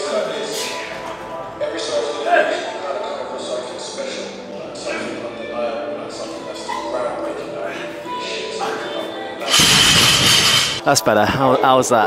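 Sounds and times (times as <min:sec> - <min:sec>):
gym background music: 0:00.1 - 0:11.0
barbell weight plates crashing: 0:09.5 - 0:10.8.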